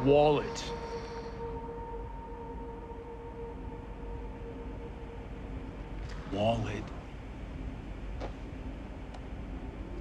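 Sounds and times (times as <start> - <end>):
held drone tones: 0.0 - 7.1.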